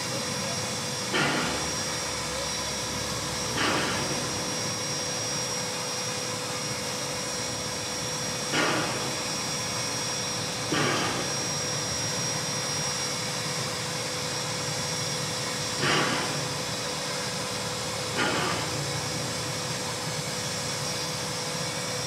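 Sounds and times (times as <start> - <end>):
constant whine: 0.0 - 22.0
steam locomotive hissing: 0.0 - 22.0.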